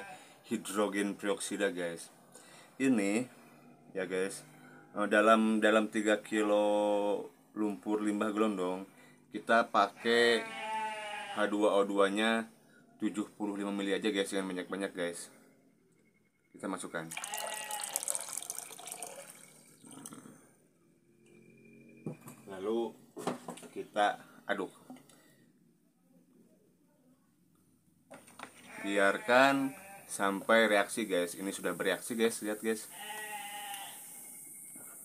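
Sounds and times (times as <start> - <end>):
livestock bleating: 0.0 - 0.3, 9.9 - 11.7, 17.2 - 18.2, 28.6 - 30.3, 32.9 - 34.5
liquid pouring and splashing into water: 17.1 - 20.1.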